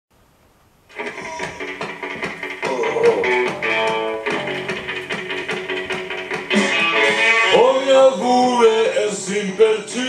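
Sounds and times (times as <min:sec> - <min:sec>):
guitar strumming: 0:00.9 - 0:10.0.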